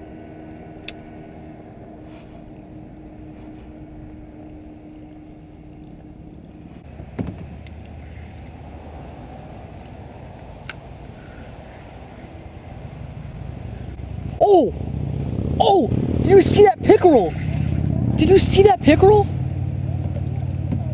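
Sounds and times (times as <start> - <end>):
low outdoor rumble on water: 0.0 - 20.9.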